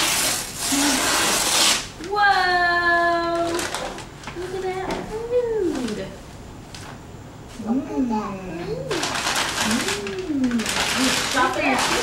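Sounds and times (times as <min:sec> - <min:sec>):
wrapping paper rustling: 0:00.0 - 0:07.0, 0:08.9 - 0:12.0.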